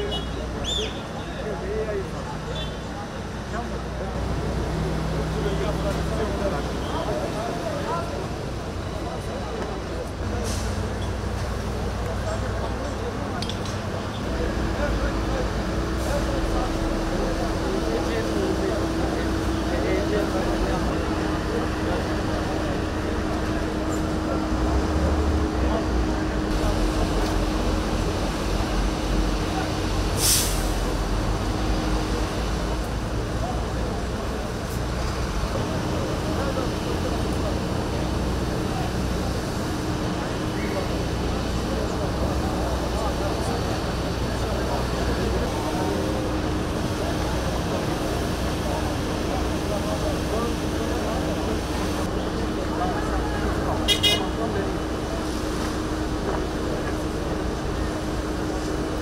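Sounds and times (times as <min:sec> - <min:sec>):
crowd talking: 0:00.0 - 0:59.0
fire truck engines droning: 0:00.0 - 0:59.0
brief hiss: 0:30.2 - 0:30.8.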